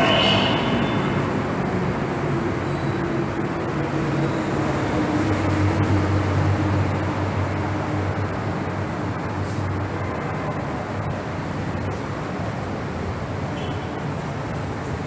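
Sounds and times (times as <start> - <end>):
train running past: 0.0 - 11.6.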